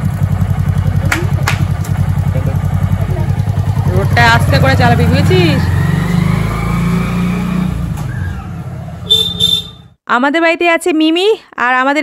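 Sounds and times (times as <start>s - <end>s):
motorcycle engine pulling away: 0.0s - 9.1s.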